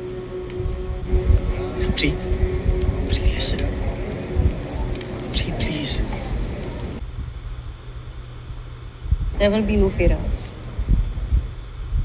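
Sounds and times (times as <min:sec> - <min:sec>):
low steady hum: 0:00.0 - 0:12.0
light jingle: 0:03.0 - 0:07.0.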